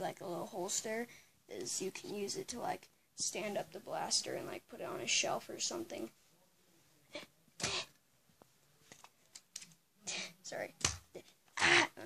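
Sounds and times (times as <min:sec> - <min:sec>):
person sneezing: 0:07.1 - 0:07.9.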